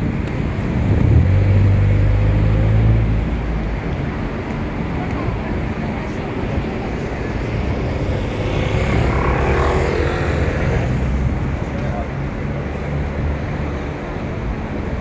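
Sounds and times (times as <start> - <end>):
wind buffeting microphone: 0.0 - 11.6
city street traffic: 0.0 - 15.0
vehicle passing: 6.7 - 13.9.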